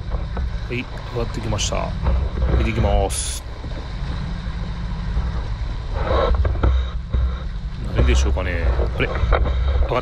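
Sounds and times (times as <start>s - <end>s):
boat engine drone: 0.0s - 10.0s
water rushing past hull: 0.0s - 10.0s.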